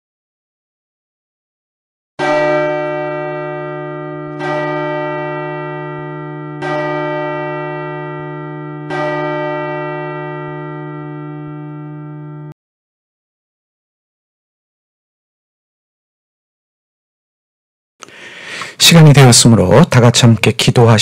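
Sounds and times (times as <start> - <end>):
bell ringing: 2.2 - 12.6.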